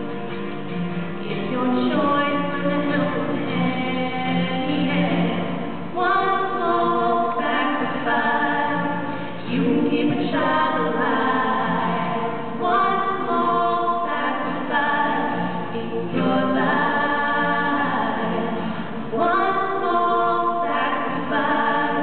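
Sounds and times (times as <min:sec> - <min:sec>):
acoustic guitar: 0:00.0 - 0:22.0
woman singing: 0:01.2 - 0:22.0.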